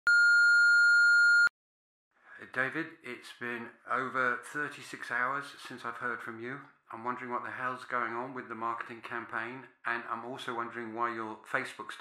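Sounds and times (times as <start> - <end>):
answering machine beep: 0.1 - 1.5.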